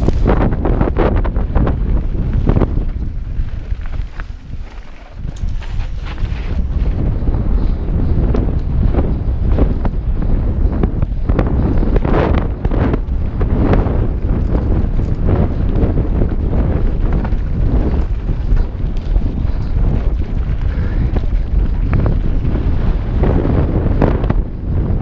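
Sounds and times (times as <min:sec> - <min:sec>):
bike knocking and clattering: 0:00.0 - 0:10.0, 0:10.6 - 0:24.6
wind rushing over microphone: 0:00.0 - 0:25.0
tyres rolling over dirt and rocks: 0:01.4 - 0:06.8.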